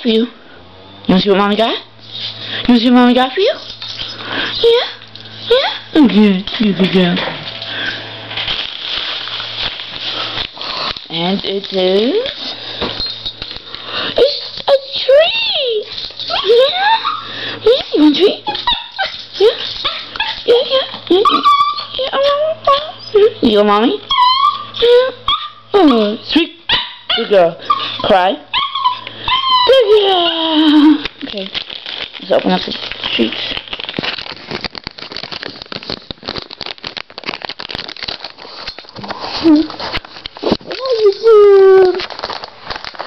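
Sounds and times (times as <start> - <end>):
packaging crinkling: 3.6 - 5.6, 6.2 - 22.8, 29.9 - 43.0
small dog whining and yipping: 16.3 - 17.4, 18.4 - 23.4, 24.0 - 30.9.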